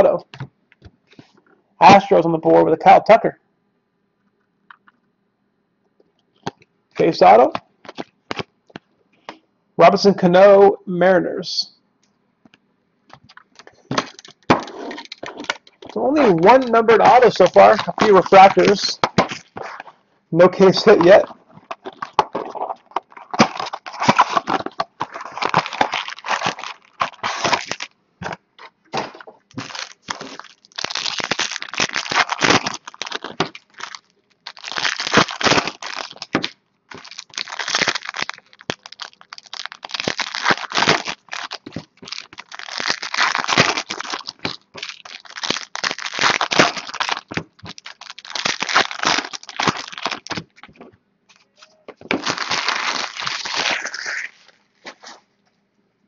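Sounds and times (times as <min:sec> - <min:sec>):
cards being handled: 0:13.1 - 0:20.0, 0:20.6 - 0:31.1
wrappers tearing and crinkling: 0:13.3 - 0:20.0, 0:20.6 - 0:27.9, 0:29.0 - 0:51.4, 0:52.0 - 0:55.2.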